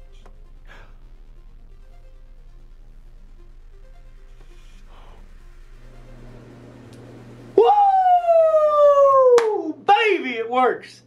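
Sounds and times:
faint steady hum: 0.0 - 11.0
man's high whoo: 7.6 - 9.8.

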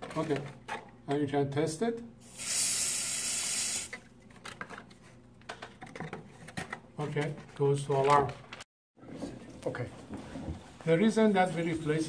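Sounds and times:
aerosol can hissing: 2.2 - 4.0.

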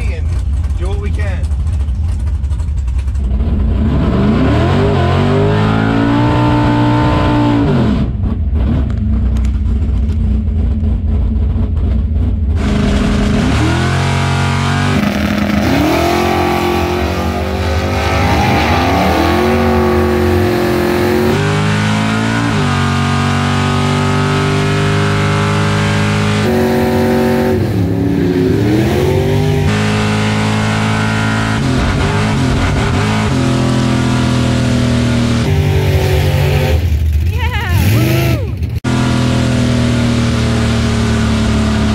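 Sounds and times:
race car engine revving: 0.0 - 41.9.

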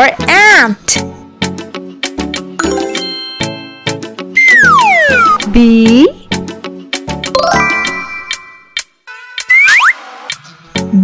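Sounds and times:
children's background music: 0.0 - 11.0.

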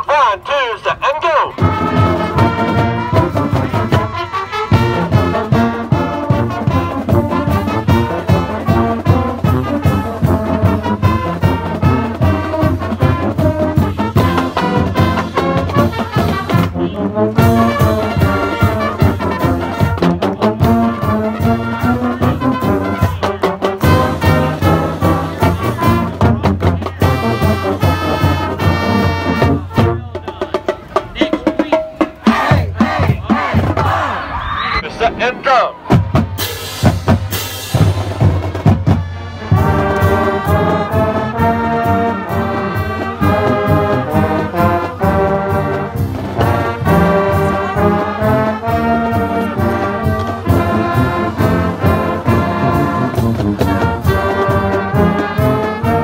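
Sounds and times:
marching band brass playing: 0.0 - 56.0
steady drum beat: 1.5 - 34.1, 35.8 - 56.0.

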